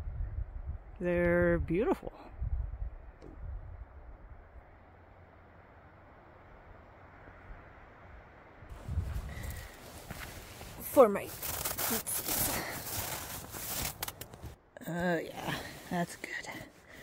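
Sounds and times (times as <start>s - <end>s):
low microphone rumbles: 0.0s - 4.7s, 8.7s - 10.7s
faint outdoor hiss: 4.2s - 17.0s.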